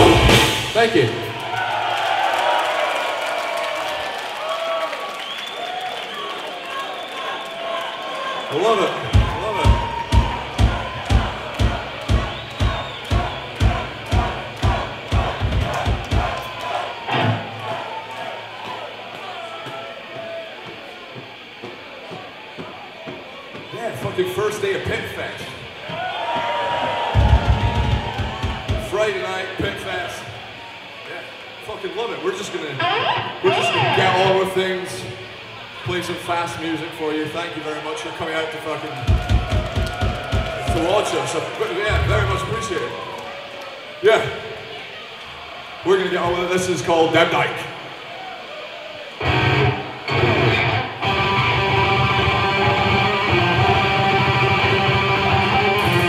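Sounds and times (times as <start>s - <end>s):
crowd cheering and shouting: 0.0s - 56.0s
bass drum beating: 9.1s - 16.6s, 27.2s - 28.9s, 39.0s - 40.9s, 41.9s - 42.7s.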